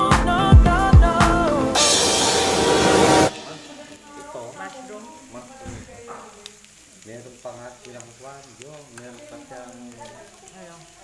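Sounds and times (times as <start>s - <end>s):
background voices: 0.0s - 11.0s
meat sizzling on a grill pan: 3.3s - 11.0s.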